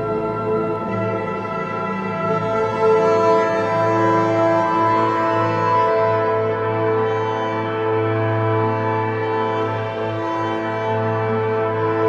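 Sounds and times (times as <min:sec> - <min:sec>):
slow orchestral music: 0:00.0 - 0:12.0.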